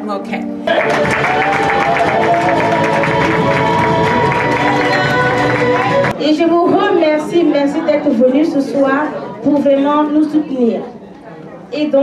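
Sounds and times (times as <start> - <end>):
loud music with held notes: 0.5 - 6.1
crowd applauding and cheering: 0.7 - 6.2.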